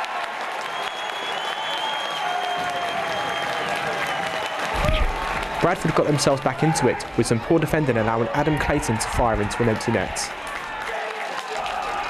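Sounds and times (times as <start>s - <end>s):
crowd clapping and cheering: 0.0s - 12.0s.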